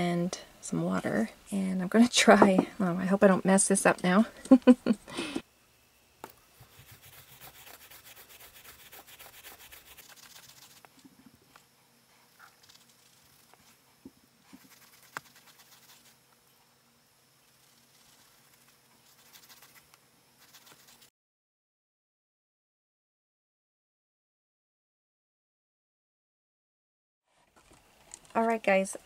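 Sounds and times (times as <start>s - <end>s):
fingers rubbing yarn fur: 6.6s - 11.0s, 12.3s - 13.8s, 14.4s - 16.2s, 17.5s - 21.1s.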